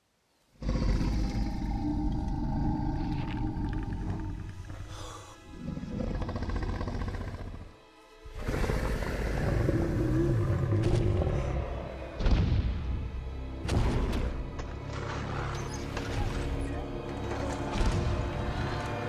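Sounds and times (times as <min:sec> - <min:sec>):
low dinosaur growls: 0:00.6 - 0:12.2
dramatic orchestral film music: 0:01.0 - 0:19.0.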